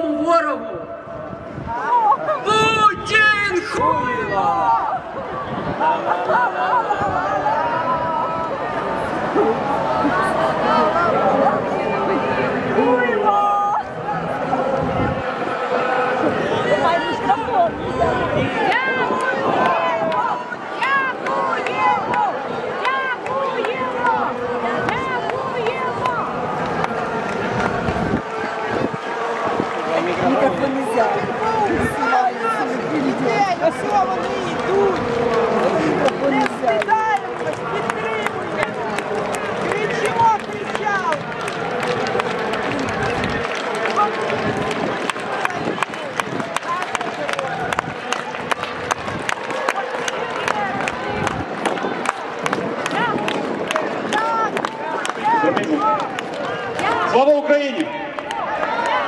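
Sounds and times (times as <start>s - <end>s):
crowd voices talking: 0.0s - 59.0s.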